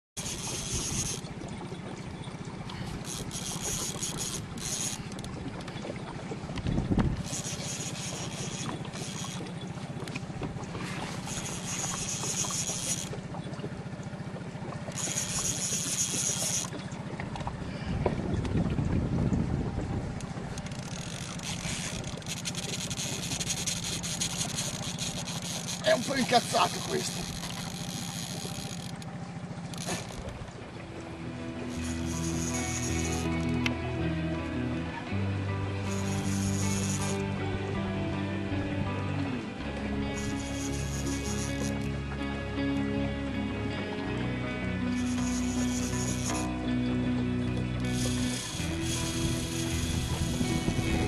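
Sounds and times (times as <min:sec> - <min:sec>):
boat motor humming: 0:00.1 - 0:51.0
fishing reel drag buzzing: 0:00.2 - 0:10.2, 0:10.8 - 0:13.5, 0:14.6 - 0:17.8, 0:20.2 - 0:51.0.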